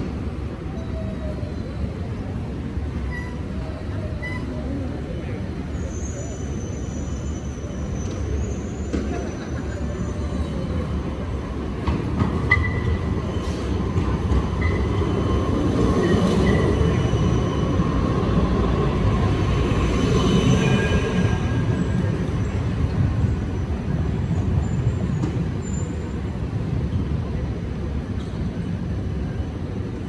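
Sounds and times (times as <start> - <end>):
tram rumbling on rails: 0.0 - 30.0
high wheel squeal: 3.0 - 3.5, 5.7 - 10.9, 14.6 - 18.0, 24.6 - 26.2.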